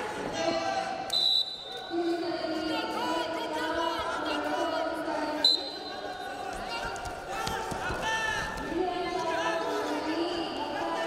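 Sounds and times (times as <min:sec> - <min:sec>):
voices in an arena: 0:00.0 - 0:11.0
referee's whistle blast: 0:01.1 - 0:01.9.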